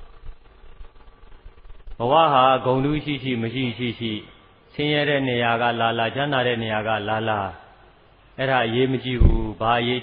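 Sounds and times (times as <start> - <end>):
man preaching: 2.0 - 7.8, 8.4 - 10.0.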